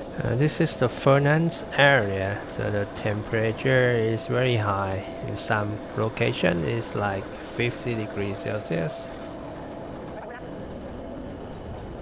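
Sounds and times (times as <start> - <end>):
industrial machinery rumble: 0.0 - 12.0.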